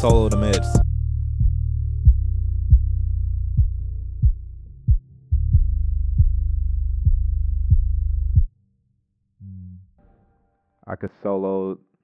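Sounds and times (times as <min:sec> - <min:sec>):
deep sustained bass note: 0:00.0 - 0:08.5, 0:09.4 - 0:10.1
muffled kick drum thumps: 0:00.0 - 0:08.5.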